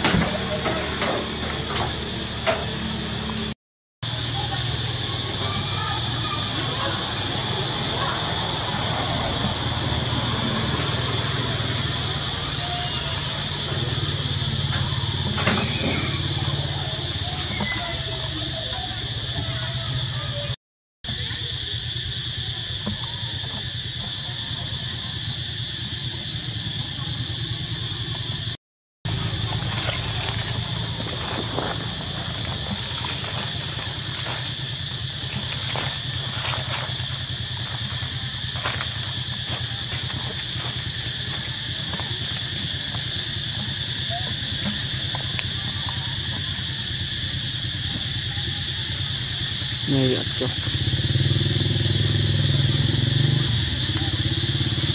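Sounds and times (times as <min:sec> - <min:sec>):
insects droning: 0:00.0 - 0:54.9.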